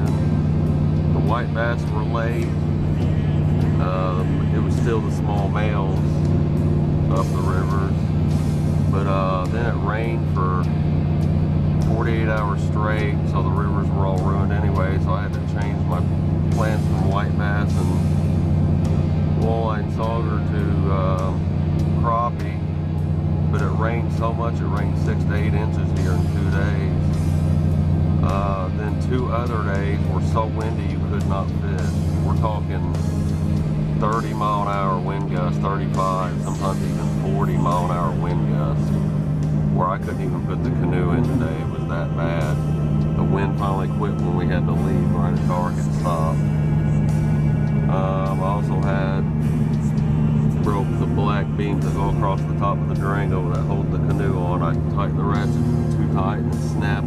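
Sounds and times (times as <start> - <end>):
steady low drone: 0.0 - 57.0
man talking: 1.1 - 6.3, 7.0 - 8.1, 8.9 - 10.8, 11.8 - 18.2, 19.3 - 22.6, 23.5 - 27.2, 28.2 - 33.2, 34.0 - 39.0, 39.7 - 46.6, 47.8 - 49.8, 50.4 - 57.0.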